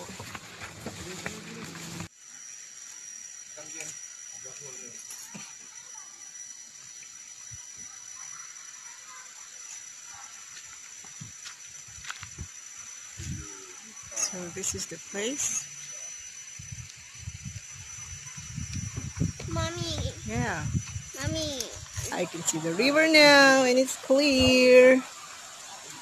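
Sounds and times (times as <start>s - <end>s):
insects droning: 0.0s - 26.0s.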